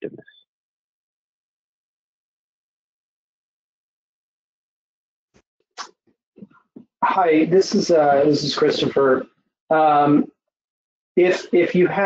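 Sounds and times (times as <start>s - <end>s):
man speaking: 7.0s - 10.2s, 11.2s - 12.0s.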